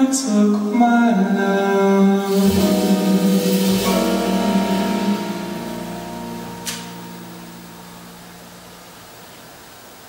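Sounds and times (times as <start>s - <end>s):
jazz band held chord: 1.8s - 9.7s.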